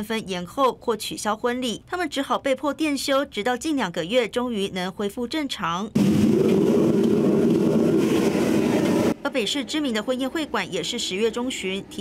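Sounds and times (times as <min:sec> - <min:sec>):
gas burner roaring: 0:06.0 - 0:09.2.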